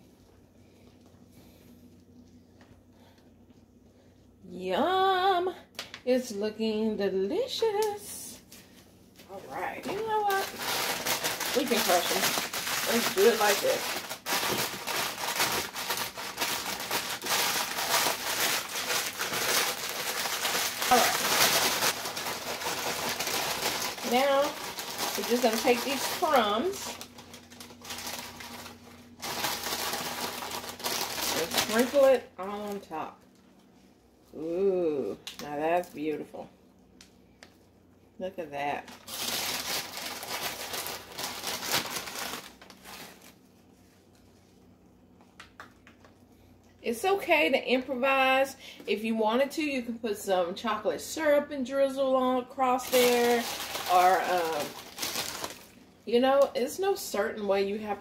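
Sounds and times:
plastic bag crinkling: 0:08.6 - 0:33.0, 0:38.8 - 0:44.4, 0:52.6 - 0:56.6
cookies crunching: 0:10.0 - 0:32.0.

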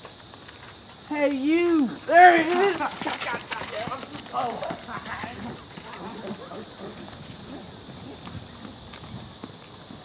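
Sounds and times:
running footsteps on asphalt: 0:00.0 - 0:10.0.

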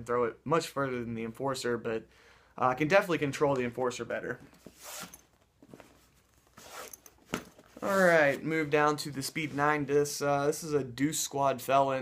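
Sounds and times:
plastic discs rustling and scraping: 0:04.5 - 0:09.8.

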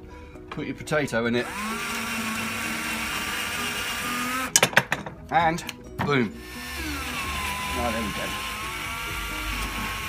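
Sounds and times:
cordless drill whining: 0:01.4 - 0:04.6, 0:06.4 - 0:10.0.

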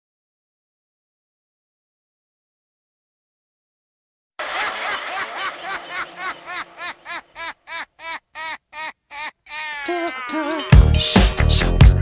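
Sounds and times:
high-pitched laughter: 0:04.4 - 0:10.7.

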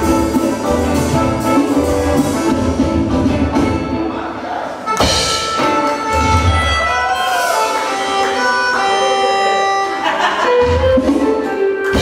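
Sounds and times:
live band jamming: 0:00.0 - 0:12.0.

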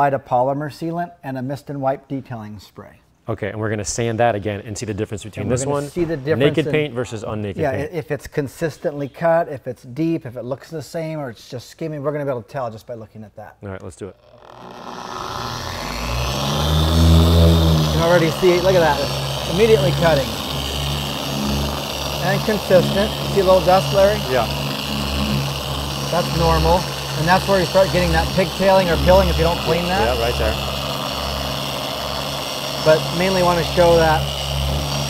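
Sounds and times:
polisher motor hum: 0:14.2 - 0:35.0
sanding disc hissing on paint: 0:14.3 - 0:35.0.

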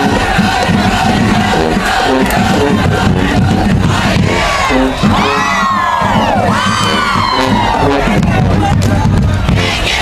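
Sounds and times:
crowd cheering: 0:00.0 - 0:10.0
drums and sousaphones beat: 0:00.0 - 0:10.0
marching band playing funk: 0:00.0 - 0:10.0.

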